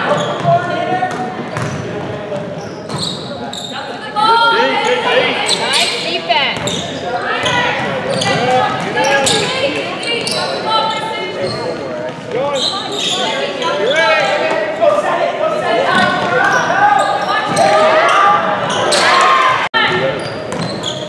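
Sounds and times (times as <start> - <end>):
voices calling out: 0.0 - 21.0.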